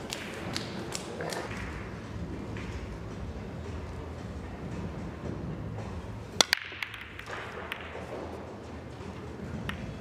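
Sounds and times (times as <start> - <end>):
low hall noise: 0.0 - 10.0
billiard balls clicking: 6.3 - 8.5, 9.5 - 10.0.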